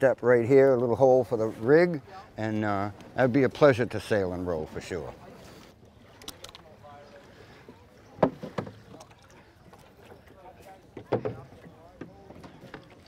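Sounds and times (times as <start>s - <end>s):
oars knocking in oarlocks: 8.1s - 9.9s, 11.0s - 13.0s.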